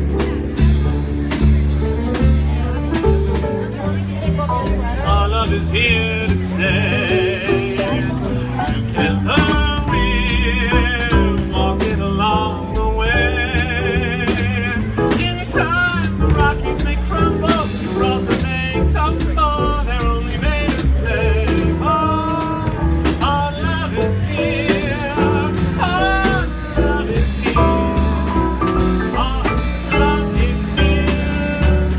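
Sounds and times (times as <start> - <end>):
drum kit with cymbals: 0.0 - 31.9
upright double bass: 0.0 - 31.9
man singing with vibrato: 5.0 - 31.9
electric keyboard: 12.3 - 31.9.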